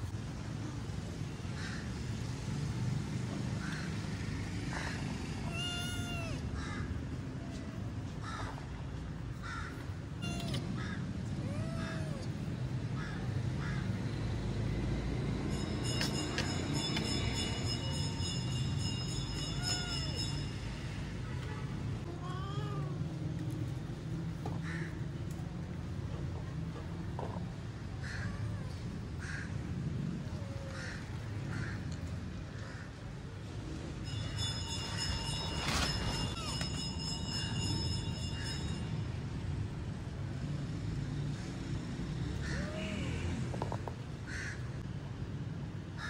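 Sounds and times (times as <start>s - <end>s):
kitten meowing: 5.4s - 6.4s, 10.2s - 10.8s, 11.4s - 12.3s, 19.4s - 20.2s, 22.1s - 23.0s.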